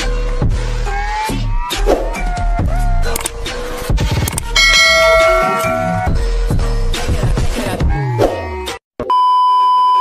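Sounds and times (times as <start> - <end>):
bright bell-like chime: 4.6 - 6.4.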